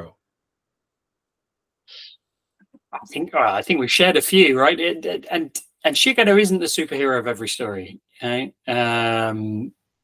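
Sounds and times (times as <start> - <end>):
man talking: 3.0 - 9.8.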